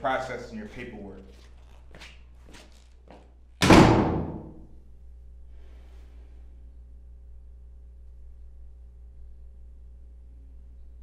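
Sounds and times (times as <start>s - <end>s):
heavy metal door slamming: 3.6s - 4.7s.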